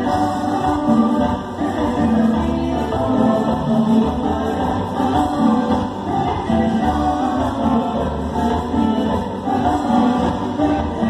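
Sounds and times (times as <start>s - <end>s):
tropical dance band playing: 0.0s - 11.0s
voices singing together: 0.0s - 11.0s.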